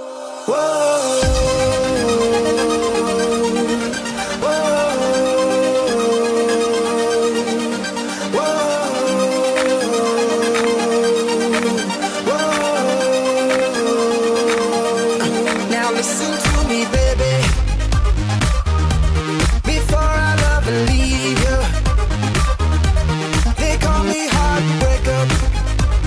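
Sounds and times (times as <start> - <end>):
electronic pop music: 0.0 - 26.0.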